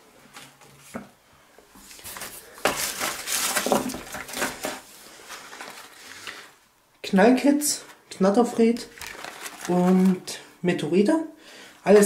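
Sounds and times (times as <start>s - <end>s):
packing peanuts rustling: 1.9s - 6.7s, 8.6s - 10.5s.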